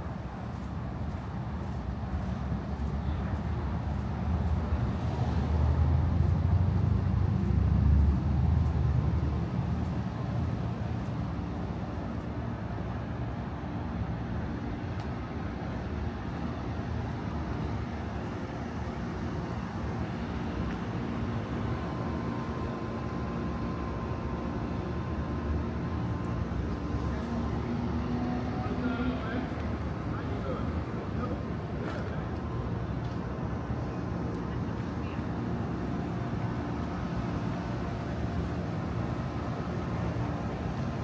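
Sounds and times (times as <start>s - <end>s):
traffic rumble: 0.0s - 41.0s.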